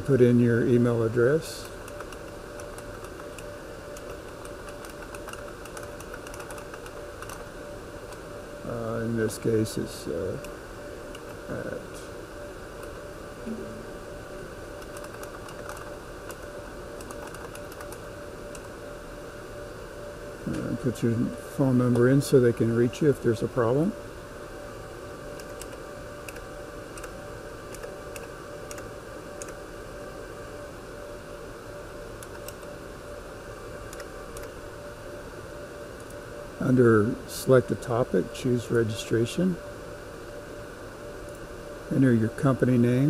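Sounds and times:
background hum: 0:00.0 - 0:43.0
computer keyboard typing: 0:01.8 - 0:07.5, 0:14.8 - 0:18.7, 0:25.4 - 0:26.4, 0:27.0 - 0:29.6, 0:33.9 - 0:34.5.

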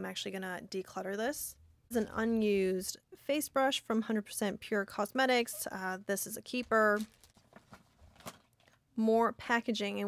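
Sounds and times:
plastic crinkling: 0:06.6 - 0:08.8.

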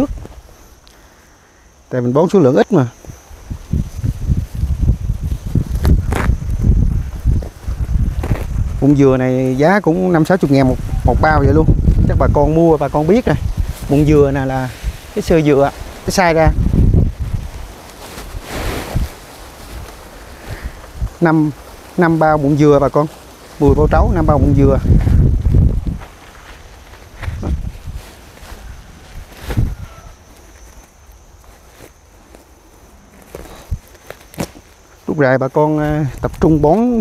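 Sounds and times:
wind on the microphone: 0:00.0 - 0:00.8, 0:02.8 - 0:32.0, 0:33.2 - 0:34.6, 0:35.6 - 0:37.0
dust pouring from a sack: 0:03.4 - 0:34.9.

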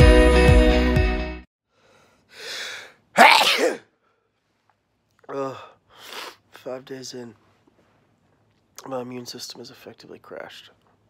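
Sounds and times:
breathy intake of breath: 0:01.7 - 0:03.0
man sneezing: 0:02.6 - 0:03.9.

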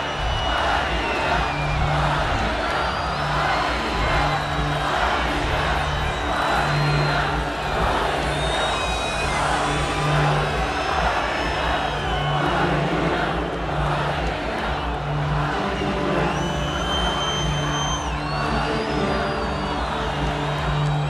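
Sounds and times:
arena crowd cheering and shouting: 0:00.0 - 0:21.0.

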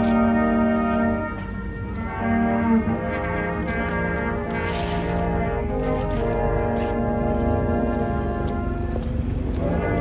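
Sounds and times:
bugle call long held notes: 0:00.0 - 0:09.0.

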